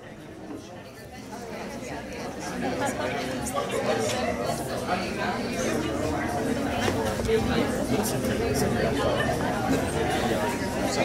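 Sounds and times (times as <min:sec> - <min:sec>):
crowd chatter in a room: 0:00.0 - 0:11.0.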